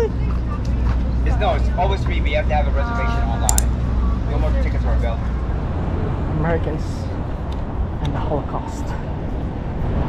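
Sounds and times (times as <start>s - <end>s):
low outdoor rumble: 0.0s - 10.0s
people talking: 6.3s - 7.2s, 8.0s - 9.0s.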